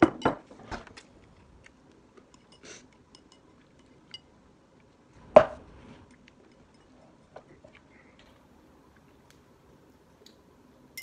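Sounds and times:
chopsticks clicking on ceramic bowls: 2.2 - 4.3.

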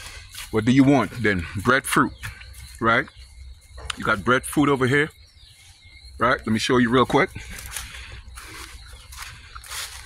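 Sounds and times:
rustling through leafy plants: 7.4 - 10.0.

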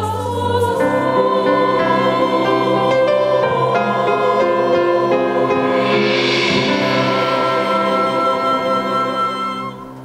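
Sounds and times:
church choir singing: 0.0 - 10.0
small orchestra playing: 0.0 - 10.0.

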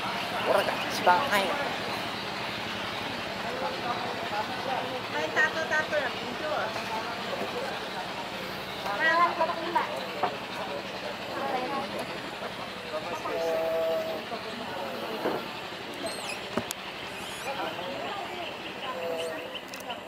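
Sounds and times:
indistinct voices talking: 0.0 - 20.0.

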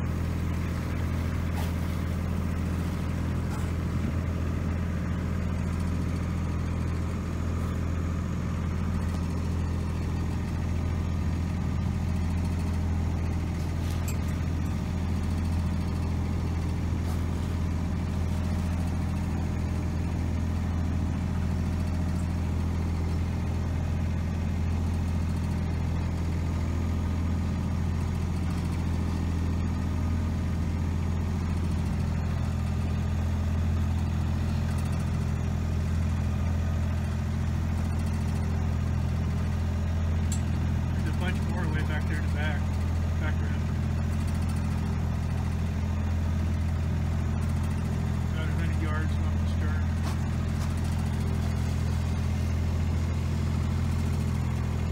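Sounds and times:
boat engine humming: 0.0 - 54.9.

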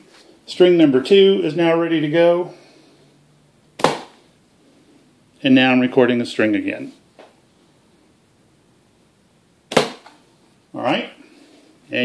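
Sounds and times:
pellet gun shot with ring: 3.8 - 4.2, 9.7 - 10.1.

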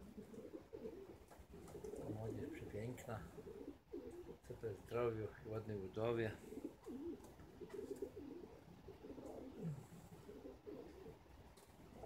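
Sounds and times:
pigeons cooing: 0.0 - 4.8, 6.3 - 12.0.

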